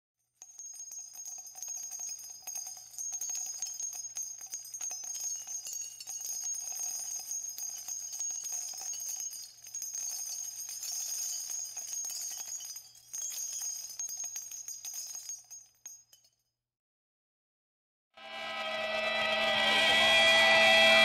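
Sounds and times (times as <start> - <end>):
metallic jingling: 0.4 - 16.4.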